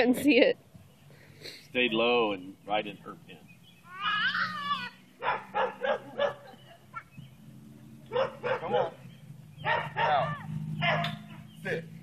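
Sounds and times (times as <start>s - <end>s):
dog whining: 3.9s - 5.0s
dog barking: 5.2s - 7.1s, 8.1s - 9.0s, 9.6s - 11.4s.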